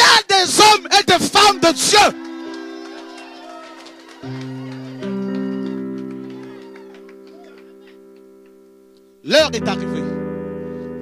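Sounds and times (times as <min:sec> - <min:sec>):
held keyboard chord: 0:01.1 - 0:11.0.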